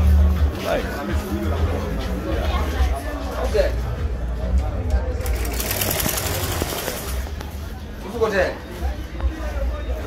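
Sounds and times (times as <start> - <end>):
sewing machine clattering: 5.2 - 7.2.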